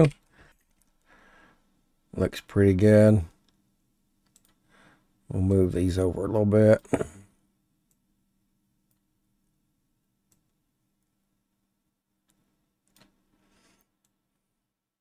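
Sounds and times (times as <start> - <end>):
low room hum: 0.0 - 14.9
computer mouse clicks: 4.2 - 4.6.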